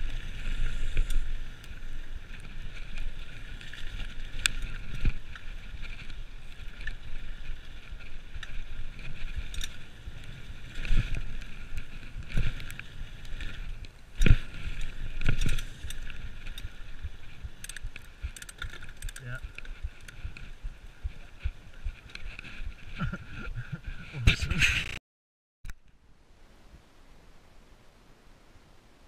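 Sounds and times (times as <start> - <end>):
bike tyres rumbling on dirt: 0.0 - 24.1
bike rattling and knocking: 2.2 - 13.5, 14.2 - 23.1.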